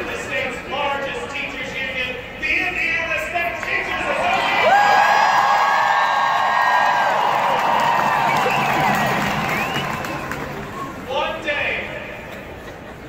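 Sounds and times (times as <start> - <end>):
crowd cheering and whooping: 4.2 - 11.0.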